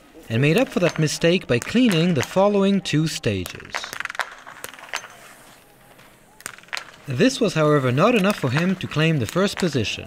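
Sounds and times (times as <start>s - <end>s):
faint outdoor ambience: 0.0s - 10.0s.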